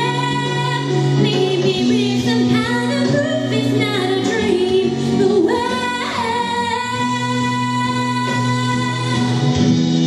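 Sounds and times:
woman singing into microphone: 0.0 - 9.7
musical accompaniment: 0.0 - 10.0.

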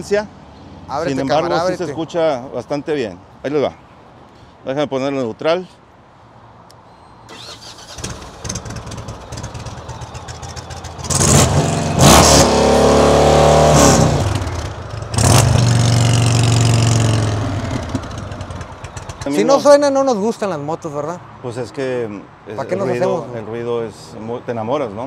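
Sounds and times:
motorcycle engine idling and revving: 7.8 - 19.5.

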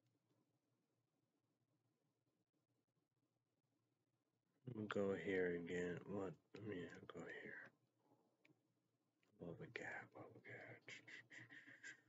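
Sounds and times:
person mumbling quietly: 9.4 - 11.9.

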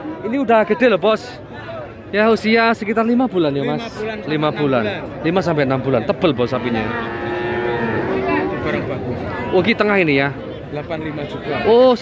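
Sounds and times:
calf mooing: 6.8 - 8.8.

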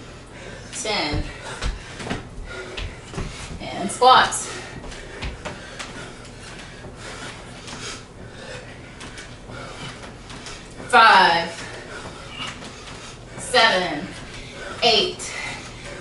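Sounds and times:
shuffling on hardwood floor: 1.0 - 14.5.

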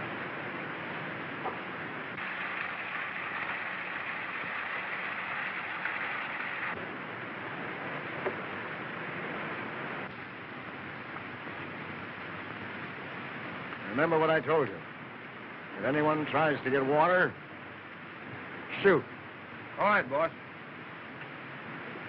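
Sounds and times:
film soundtrack hiss: 0.0 - 22.0.

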